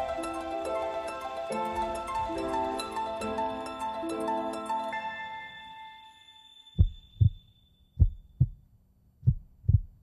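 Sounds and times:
heartbeat thuds: 0:06.8 - 0:07.4, 0:08.0 - 0:08.6, 0:09.2 - 0:10.0.

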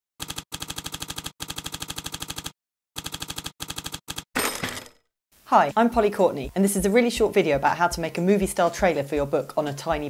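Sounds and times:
typewriter key strikes: 0:04.4 - 0:05.0.

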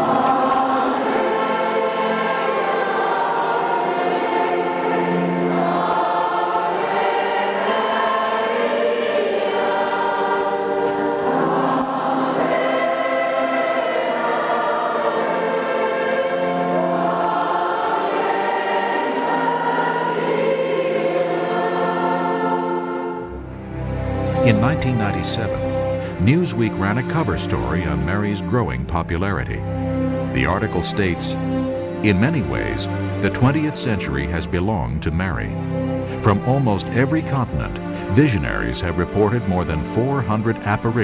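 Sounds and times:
choir singing long notes: 0:00.0 - 0:28.4.

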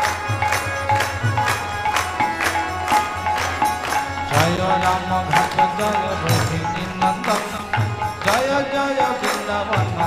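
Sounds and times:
rhythmic percussion: 0:00.0 - 0:10.0.

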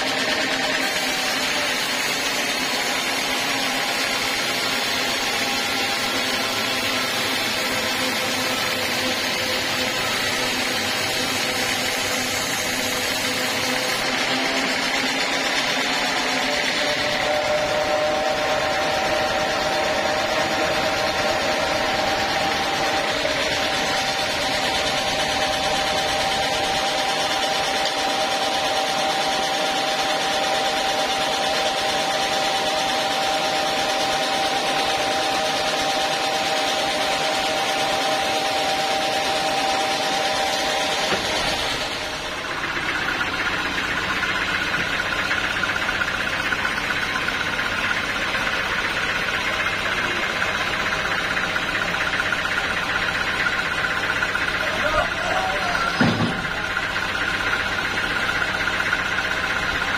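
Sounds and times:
sawmill machinery running: 0:00.0 - 0:59.9.

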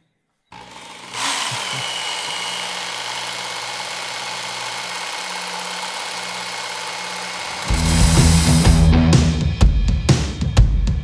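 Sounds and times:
knife sharpener motor humming: 0:00.5 - 0:08.9
loud rock music: 0:07.7 - 0:11.0.

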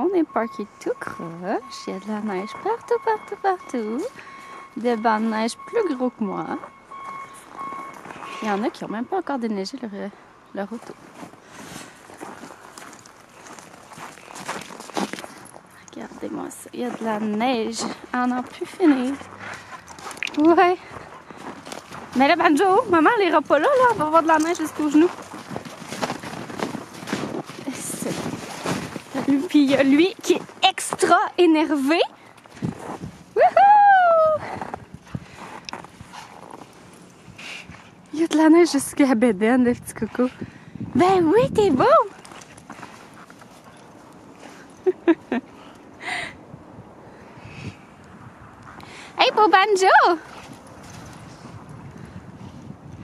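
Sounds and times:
footsteps crunching through snow: 0:10.7 - 0:33.4.

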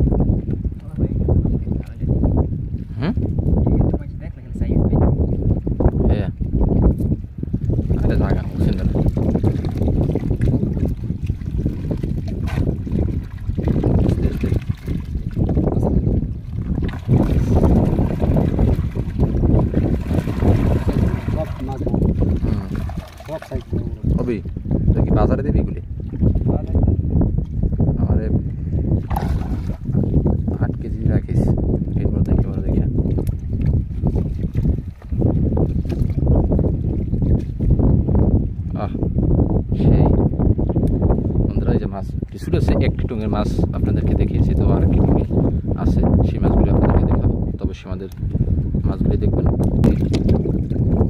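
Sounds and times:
wind rumble on microphone: 0:00.0 - 0:51.0
water sloshing and trickling: 0:06.4 - 0:25.0, 0:25.9 - 0:27.6, 0:29.0 - 0:30.5, 0:32.4 - 0:37.8, 0:49.6 - 0:51.0.

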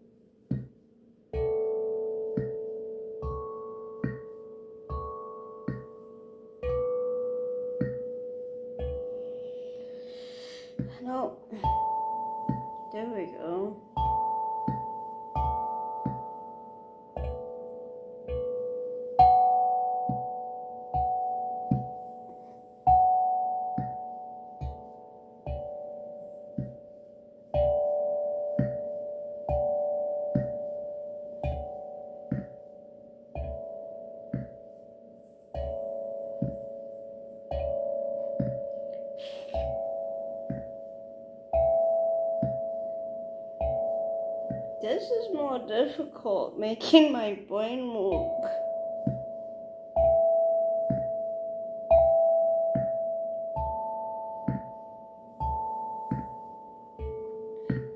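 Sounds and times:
steel tongue drum notes: 0:00.0 - 0:57.9.

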